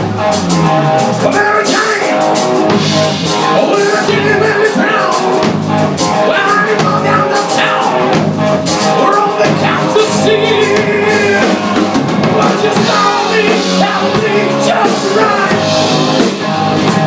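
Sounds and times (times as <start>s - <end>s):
bass guitar: 0.0s - 17.0s
drum kit: 0.0s - 17.0s
electric guitar: 0.0s - 17.0s
man singing: 1.2s - 2.2s, 3.6s - 5.3s, 6.1s - 8.1s, 8.9s - 11.7s, 12.3s - 15.8s.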